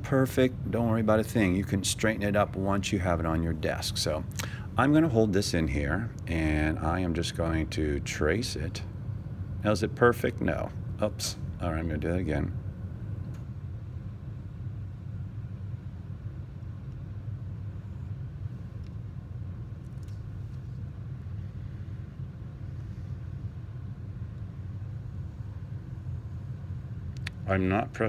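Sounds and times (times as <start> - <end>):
low room rumble: 0.0 - 28.0.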